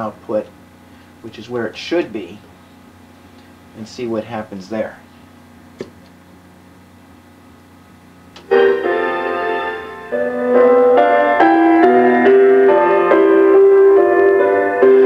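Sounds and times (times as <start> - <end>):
low steady hum: 0.0 - 11.2
keyboard music through loudspeaker: 8.4 - 15.0.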